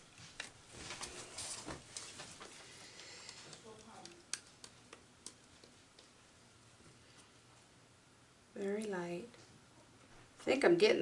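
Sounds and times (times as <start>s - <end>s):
rustling of supplies: 0.0s - 4.7s
light clicks and taps: 1.9s - 6.2s.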